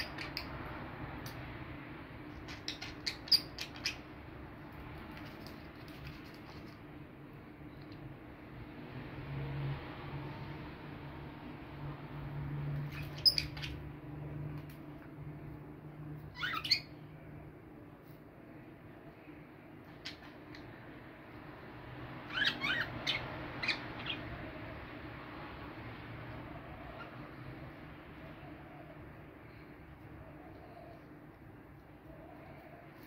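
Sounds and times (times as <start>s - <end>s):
budgerigars chirping: 22.3s - 24.3s.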